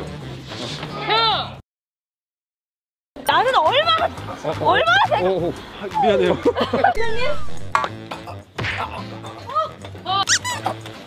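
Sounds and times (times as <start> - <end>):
background music: 3.2 - 11.0.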